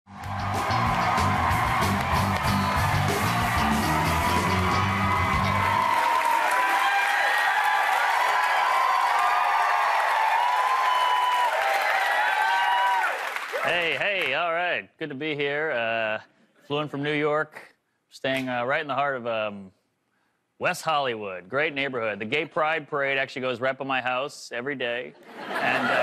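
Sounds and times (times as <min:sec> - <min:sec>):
band playing walk-on music: 0:00.1 - 0:06.1
audience cheering and whoops: 0:00.1 - 0:13.8
audience applause: 0:00.1 - 0:14.4, 0:25.6 - 0:26.0.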